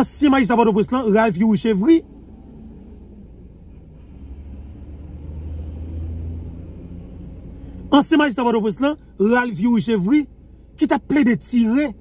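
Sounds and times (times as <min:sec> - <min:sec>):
vehicle rumble inside a car: 0:00.0 - 0:12.0.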